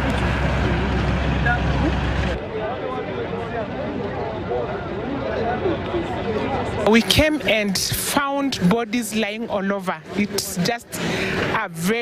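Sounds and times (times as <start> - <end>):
vehicle engine idling: 0.0 - 5.1
crowd chatter: 0.0 - 12.0.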